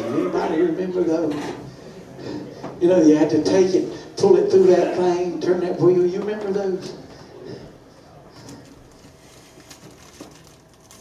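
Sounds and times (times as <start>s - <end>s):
faint murmured voices: 0.0s - 11.0s.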